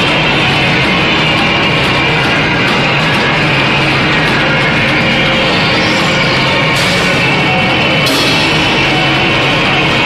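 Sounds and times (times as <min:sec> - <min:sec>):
drum kit and cymbals: 0:00.0 - 0:10.0.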